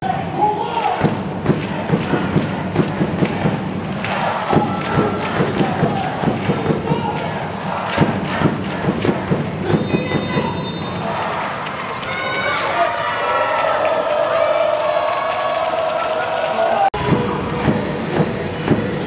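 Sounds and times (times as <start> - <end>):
cheer music with thumping beat: 0.0 - 16.0, 16.8 - 19.0
crowd cheering: 0.0 - 19.0.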